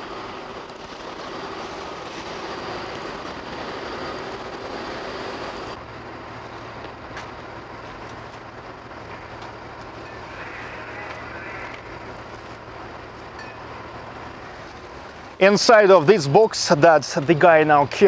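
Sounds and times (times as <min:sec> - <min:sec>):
steady low hum: 0:00.0 - 0:16.9
outdoor background noise: 0:00.0 - 0:18.0.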